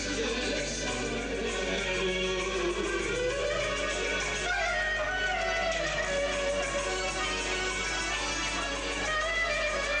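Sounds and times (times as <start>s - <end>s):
clarinet melody: 1.7s - 10.0s.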